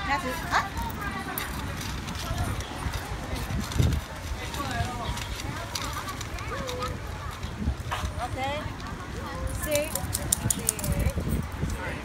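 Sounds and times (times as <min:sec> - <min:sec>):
dogs crunching dry kibble: 0:00.2 - 0:08.2, 0:09.5 - 0:11.2.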